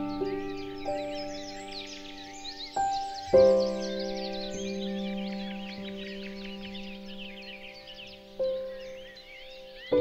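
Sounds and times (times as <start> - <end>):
calm music: 0.0 - 10.0
small birds chirping: 0.0 - 10.0.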